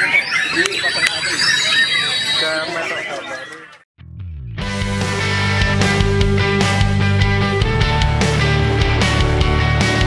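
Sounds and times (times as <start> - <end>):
people's voices: 0.0 - 3.8
songbird singing: 0.0 - 3.8.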